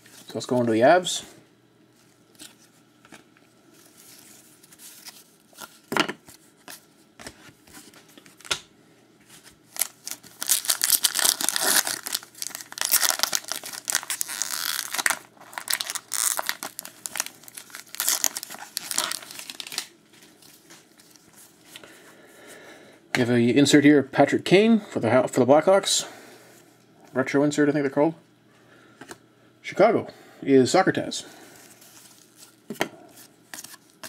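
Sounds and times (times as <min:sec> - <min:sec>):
wrapper tearing and crinkling: 0:09.7 - 0:19.9.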